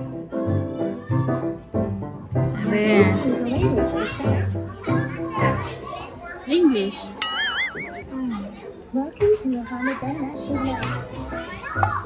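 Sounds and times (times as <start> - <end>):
music: 0.0 - 5.9, 10.0 - 12.0
voices talking: 6.8 - 10.8.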